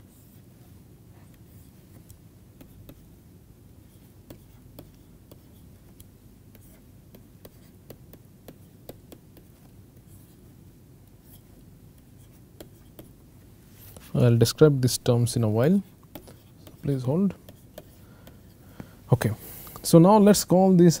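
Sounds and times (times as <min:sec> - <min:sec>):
steady low hum: 0:00.0 - 0:21.0
stylus tapping on tablet: 0:04.2 - 0:09.6.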